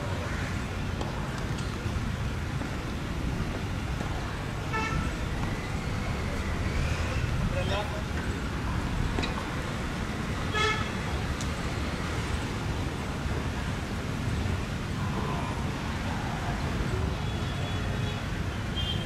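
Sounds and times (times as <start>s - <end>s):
road traffic noise: 0.0s - 19.0s
vehicle horn tooting: 4.7s - 5.2s, 10.5s - 10.9s, 17.2s - 19.0s.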